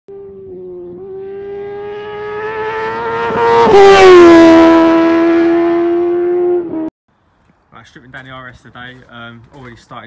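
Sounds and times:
car engine at high revs: 0:00.1 - 0:06.9.

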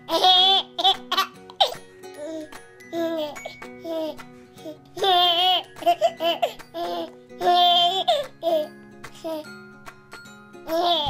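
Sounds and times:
baby laughing: 0:00.0 - 0:09.5, 0:10.6 - 0:11.0
light background music: 0:00.0 - 0:11.0.

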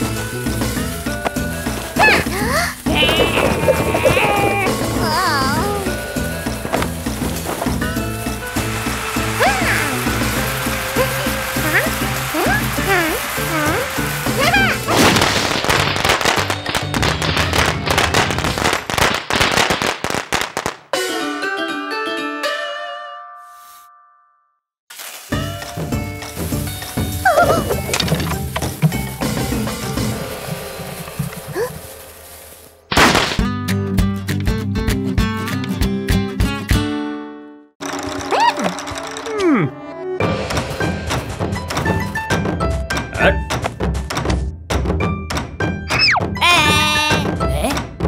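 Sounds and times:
cartoon background music: 0:00.0 - 0:16.1, 0:21.0 - 0:23.7, 0:25.3 - 0:30.4, 0:37.8 - 0:48.0
loud crackling noise: 0:00.3 - 0:20.7, 0:26.2 - 0:33.4
squeaky wordless character voices: 0:02.0 - 0:06.0, 0:38.2 - 0:39.9, 0:45.9 - 0:47.8.

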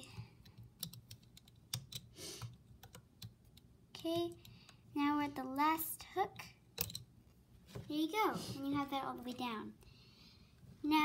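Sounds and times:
plastic hook clicking on pegs: 0:06.8 - 0:07.1.

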